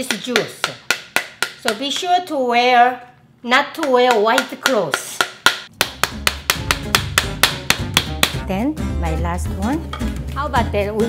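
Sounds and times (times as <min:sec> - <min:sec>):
wooden spoon beating pomegranate: 0:00.0 - 0:02.3, 0:03.7 - 0:08.5.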